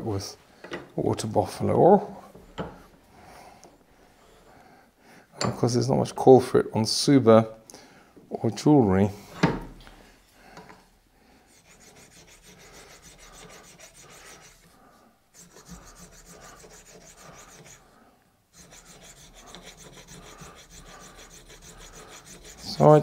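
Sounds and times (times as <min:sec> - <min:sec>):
steel scraper scraping horn: 0:11.6 - 0:14.8, 0:15.4 - 0:17.8, 0:18.6 - 0:23.0.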